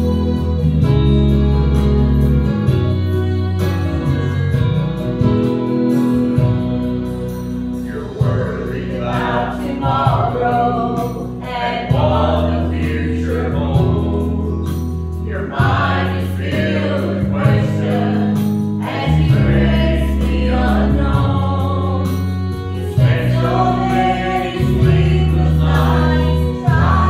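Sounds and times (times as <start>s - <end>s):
instrumental accompaniment: 0.0s - 27.0s
choir singing a hymn: 7.8s - 27.0s.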